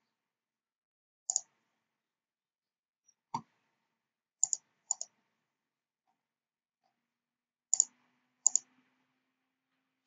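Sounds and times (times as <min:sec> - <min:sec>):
computer mouse clicks: 0:04.4 - 0:05.1, 0:07.7 - 0:08.7.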